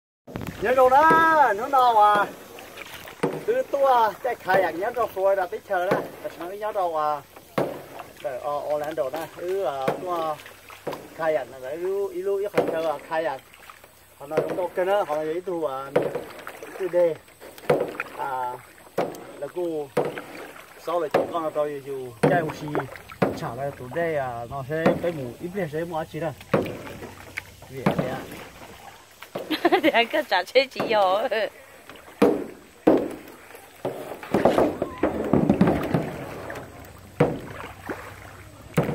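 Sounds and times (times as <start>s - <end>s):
faint paddling in water: 0.3s - 38.9s
people talking: 0.6s - 2.4s, 3.4s - 7.2s, 20.9s - 26.4s, 27.7s - 28.4s, 29.5s - 31.5s.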